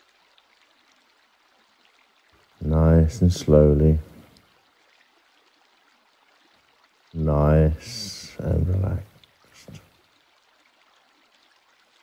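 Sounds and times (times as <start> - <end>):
faint background hiss: 0.0 - 12.0
man's voice: 2.6 - 4.2, 7.2 - 9.8.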